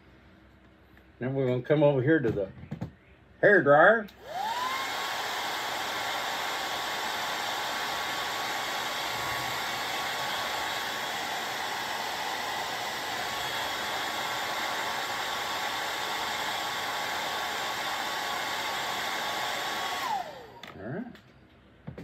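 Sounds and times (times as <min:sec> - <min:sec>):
hair dryer running: 0:04.2 - 0:20.8.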